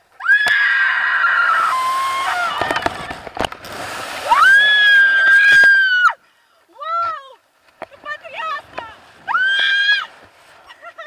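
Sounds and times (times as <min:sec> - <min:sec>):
woman screaming: 0:00.2 - 0:02.7, 0:04.2 - 0:06.2, 0:09.3 - 0:10.1.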